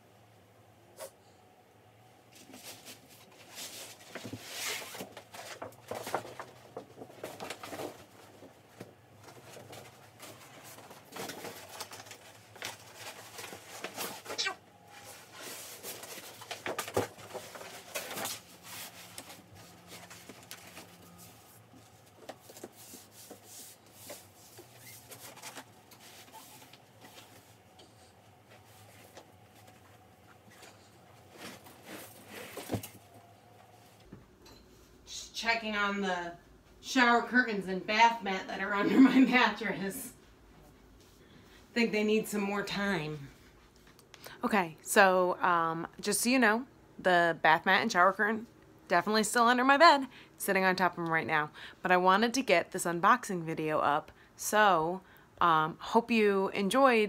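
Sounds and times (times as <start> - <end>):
plastic and fabric rustling: 2.3 - 34.1.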